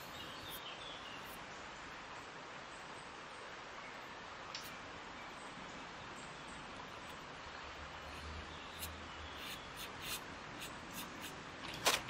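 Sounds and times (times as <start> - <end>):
brush strokes on paint surface: 8.0 - 11.4.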